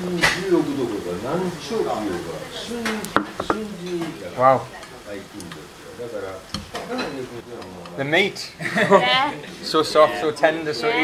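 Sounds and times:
pan sizzling: 0.0 - 11.0.

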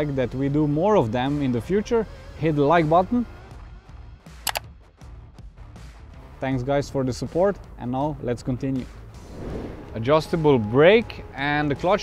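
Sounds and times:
quiet background music: 0.0 - 4.8, 5.7 - 12.0
computer mouse click: 4.4 - 4.6.

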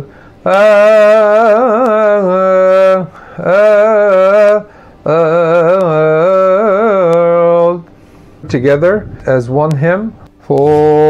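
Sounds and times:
man breathing: 0.0 - 0.4, 3.1 - 3.4, 4.6 - 5.1, 7.9 - 9.3
man chanting unaccompanied: 0.0 - 7.8, 8.4 - 11.0.

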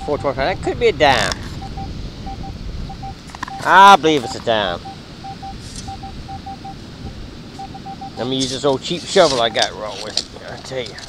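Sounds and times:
metal detector beeps: 0.0 - 0.6, 1.6 - 6.8, 7.6 - 10.0
background hiss: 0.0 - 11.0.

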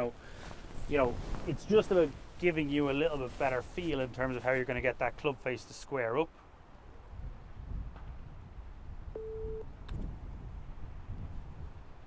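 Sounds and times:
short electronic beep: 9.2 - 9.7.

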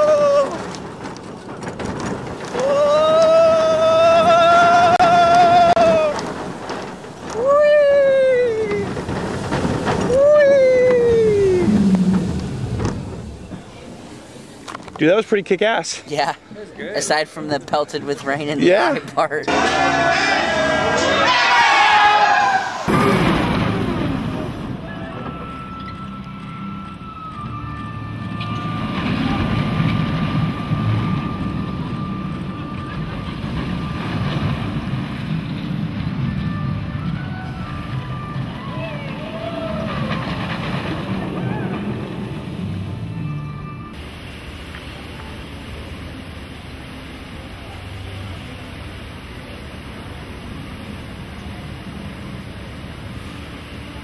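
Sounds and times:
roller coaster rumbling on track: 0.0 - 54.0
high whine: 19.5 - 54.0.

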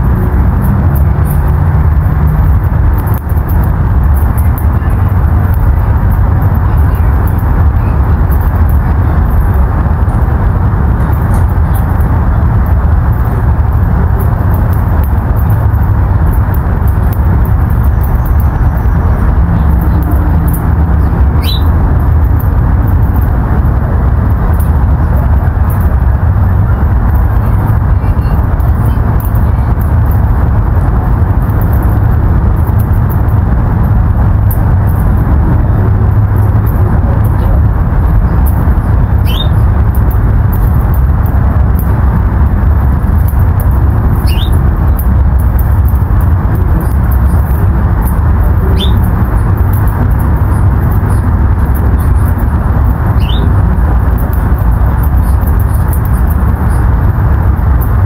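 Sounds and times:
low outdoor rumble: 0.0 - 58.0
small bird chirping: 21.0 - 21.7, 39.2 - 39.6, 44.2 - 44.6, 48.7 - 49.0, 53.1 - 53.5.

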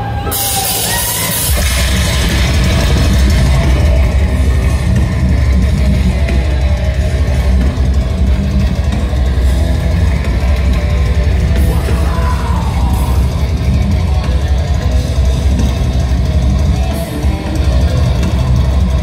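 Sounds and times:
metalcore band playing live: 0.0 - 19.0.

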